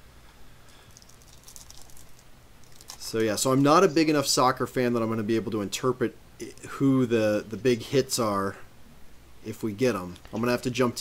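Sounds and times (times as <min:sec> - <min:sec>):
low steady hum: 0:00.0 - 0:11.0
cardboard cards rustling: 0:01.0 - 0:03.4.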